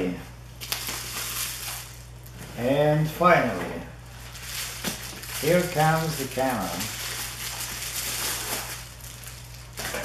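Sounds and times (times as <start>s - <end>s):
bubble wrap crinkling: 0.6s - 2.5s, 4.0s - 10.0s.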